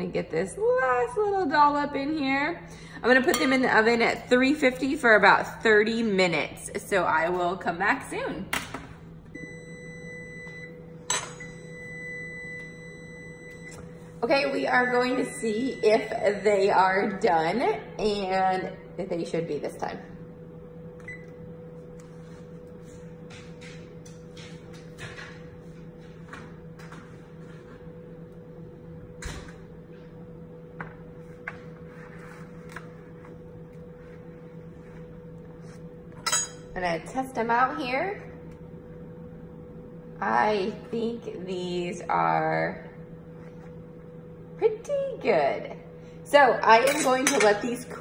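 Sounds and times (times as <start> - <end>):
steady hum: 0.0 - 48.0
oven timer high tone: 9.3 - 23.0.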